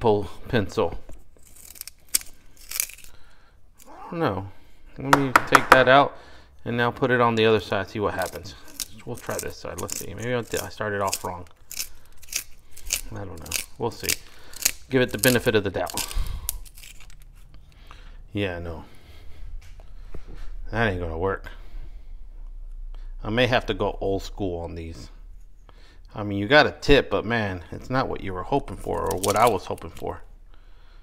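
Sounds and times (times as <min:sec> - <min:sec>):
pencil sharpener crunching scrapes: 0:01.4 - 0:03.2, 0:08.2 - 0:17.7, 0:28.8 - 0:30.1.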